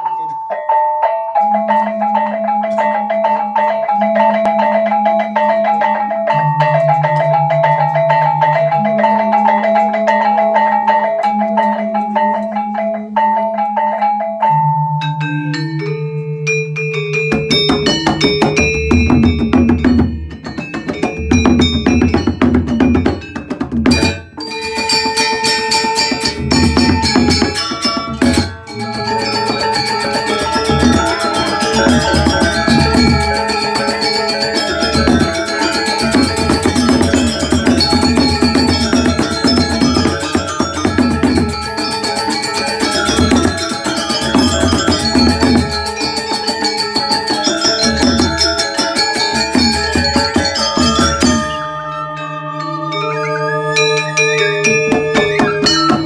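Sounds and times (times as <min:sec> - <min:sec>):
quick repeating high melody: 0:16.6 - 0:56.0
drum beat: 0:17.3 - 0:46.4, 0:54.8 - 0:56.0.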